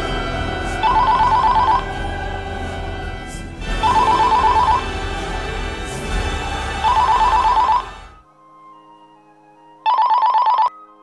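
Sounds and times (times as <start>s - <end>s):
telephone ringing: 0.8s - 1.8s, 3.8s - 4.8s, 6.8s - 8.2s, 9.8s - 10.8s.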